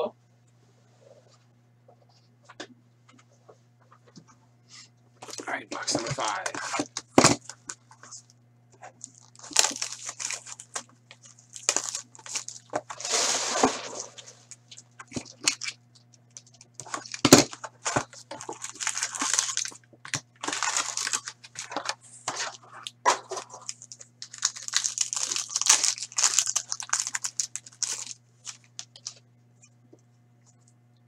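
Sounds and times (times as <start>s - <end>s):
faint steady hum: 0.0s - 31.0s
plastic and foil wrappers crinkling: 5.2s - 8.3s, 8.9s - 29.2s.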